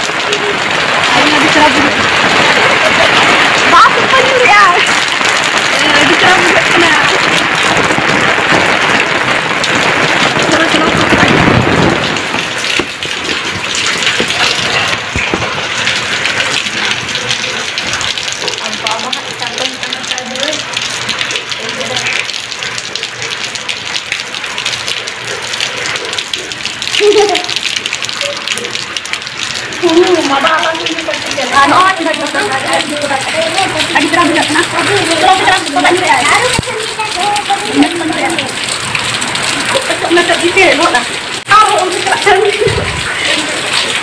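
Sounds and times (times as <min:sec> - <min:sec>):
rain falling: 0:00.0 - 0:44.0.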